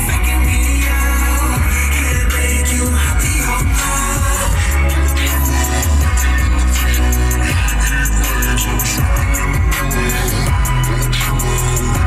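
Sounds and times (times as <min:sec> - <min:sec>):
bass-heavy song on car stereo: 0:00.0 - 0:12.0.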